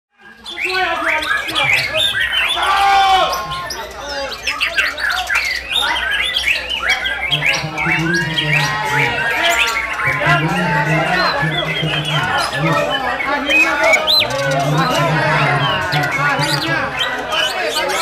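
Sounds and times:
songbirds whistling and chirping: 0.2s - 18.0s
men talking: 0.3s - 18.0s.

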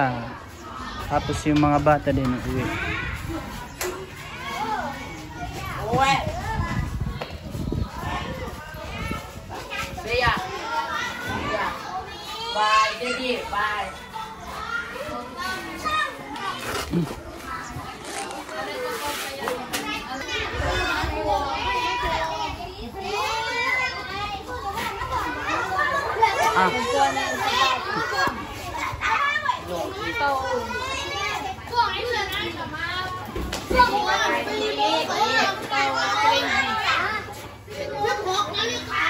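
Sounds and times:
children chattering and calling out: 0.0s - 39.0s.

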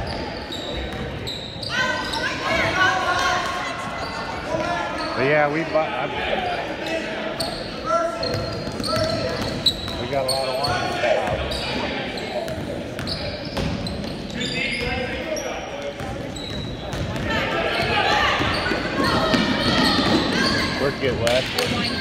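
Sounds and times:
sneakers squeaking: 0.0s - 5.7s, 6.4s - 22.0s
hubbub of voices echoing: 0.0s - 22.0s
basketball bouncing: 16.0s - 20.4s.

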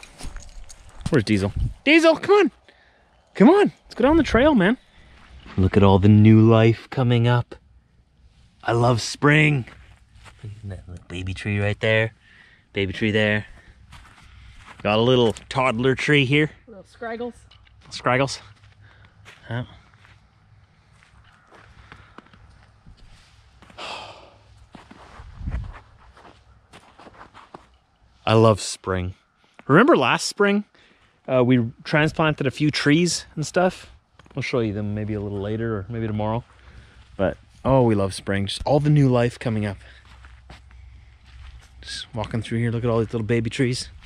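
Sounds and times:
footsteps crunching on dry grass: 9.6s - 10.8s, 13.4s - 15.5s, 17.8s - 23.8s, 24.4s - 27.7s, 39.1s - 44.0s
breathy rush: 23.2s - 24.6s.

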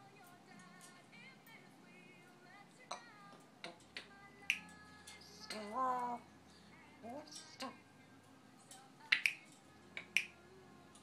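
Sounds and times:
parrot clicking: 9.1s - 10.4s.

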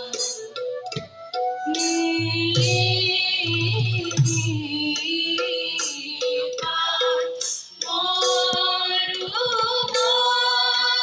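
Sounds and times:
hand drum: 0.0s - 10.2s
small cymbals: 0.0s - 10.5s
women singing devotional song: 1.7s - 11.0s.

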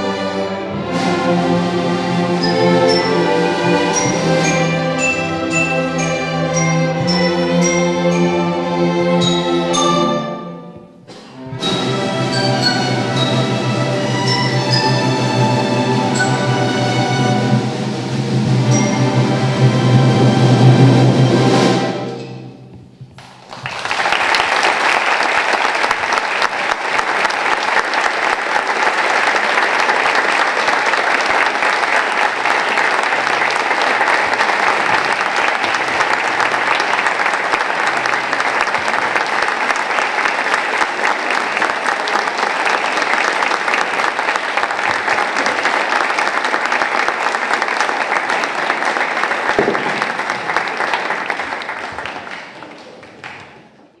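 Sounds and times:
audience applauding: 23.2s - 54.0s.

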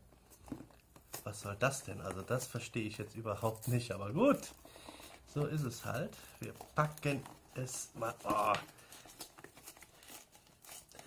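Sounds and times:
packaging crinkling and rustling: 0.2s - 11.0s.

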